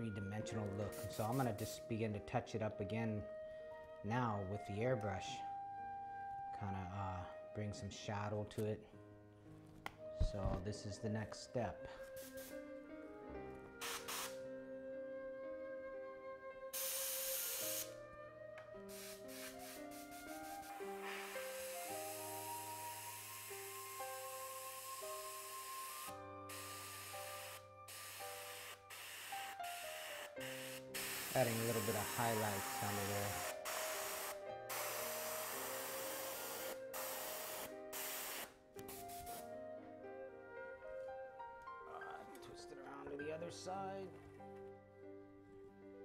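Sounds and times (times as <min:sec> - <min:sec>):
soft background music: 0:00.0 - 0:46.0
airbrush spraying hiss: 0:00.9 - 0:01.6, 0:12.1 - 0:12.6, 0:13.8 - 0:14.4, 0:16.8 - 0:18.0, 0:18.9 - 0:39.5.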